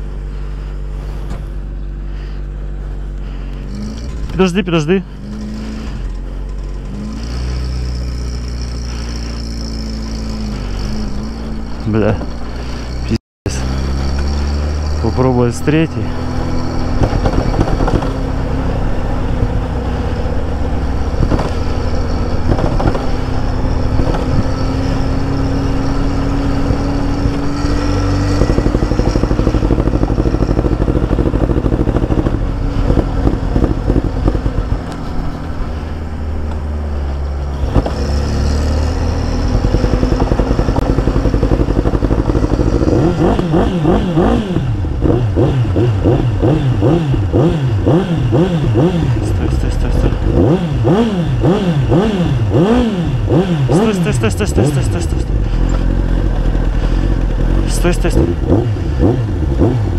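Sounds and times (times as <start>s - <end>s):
engine rumble: 0.0s - 59.9s
road noise: 0.0s - 59.9s
motorcycle engine revving: 3.2s - 59.9s.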